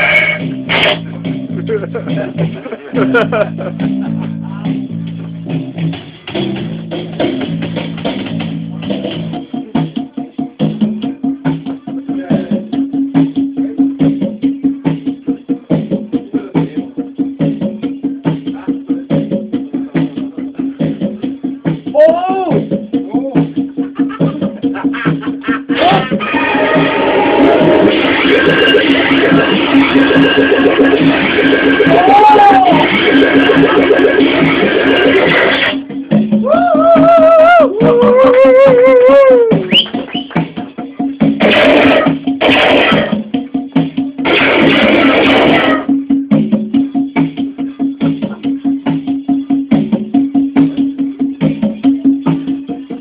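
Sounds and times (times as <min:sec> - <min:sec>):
electronic noise music: 0:00.0 - 0:07.6, 0:23.6 - 0:40.2, 0:41.2 - 0:46.9
rising and falling whoops: 0:25.8 - 0:27.9, 0:31.8 - 0:33.0, 0:36.4 - 0:40.3.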